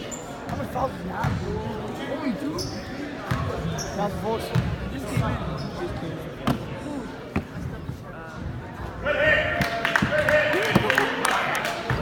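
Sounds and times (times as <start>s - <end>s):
spectators chattering: 0.0s - 12.0s.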